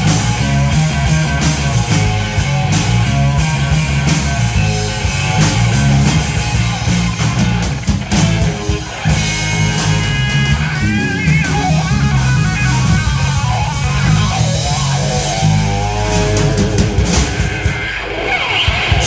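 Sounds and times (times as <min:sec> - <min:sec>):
bass guitar: 0:00.0 - 0:19.0
drums: 0:00.0 - 0:19.0
electric guitar lead with bent notes: 0:00.0 - 0:19.0.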